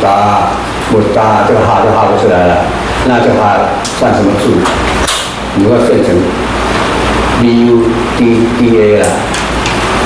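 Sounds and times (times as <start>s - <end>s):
man speaking: 0.0s - 4.8s, 5.5s - 6.5s, 7.4s - 9.3s.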